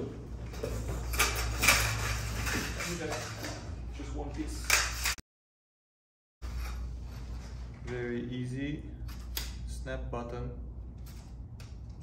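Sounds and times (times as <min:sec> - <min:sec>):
metal tubes clinking together: 0:00.5 - 0:03.8.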